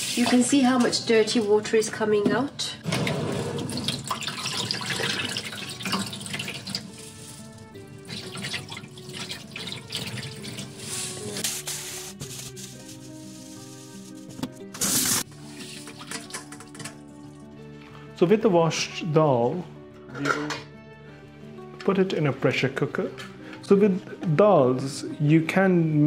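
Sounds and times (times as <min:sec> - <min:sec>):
background music: 0:00.0 - 0:26.0
water swishing in a steel bowl: 0:03.3 - 0:11.4, 0:15.3 - 0:16.6.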